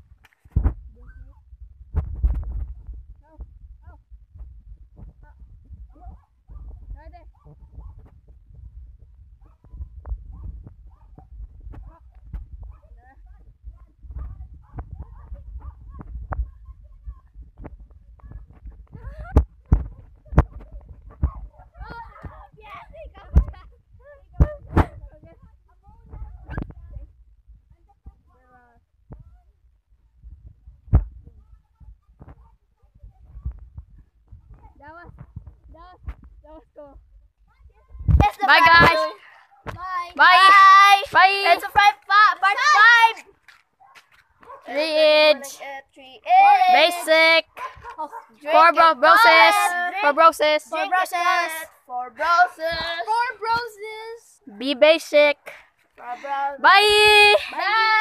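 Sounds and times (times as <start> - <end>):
microphone handling thumps: 0.4 - 0.9, 1.6 - 23.7, 24.3 - 27.0, 30.2 - 36.5
children calling: 40.1 - 43.4, 56.6 - 58.0
running footfalls on concrete: 40.4 - 45.0.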